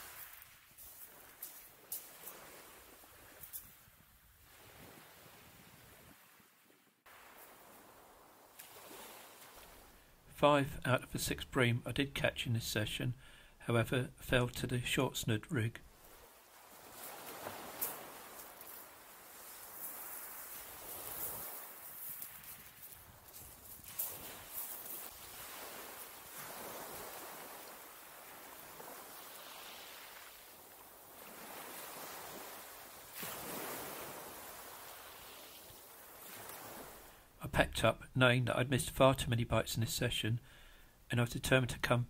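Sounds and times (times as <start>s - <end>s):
waves washing onto shingle: 0.0s - 3.7s, 4.5s - 10.0s, 15.9s - 37.2s.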